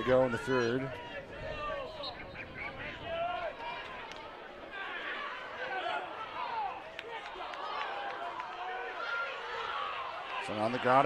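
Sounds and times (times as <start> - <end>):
crowd calling and shouting: 0.0 - 11.0.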